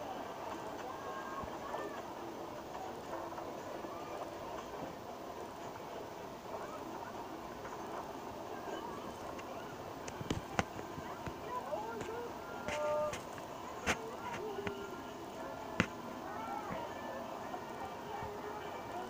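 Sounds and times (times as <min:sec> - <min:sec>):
faint crowd voices: 0:00.0 - 0:19.0
ride train running on track: 0:00.0 - 0:19.0.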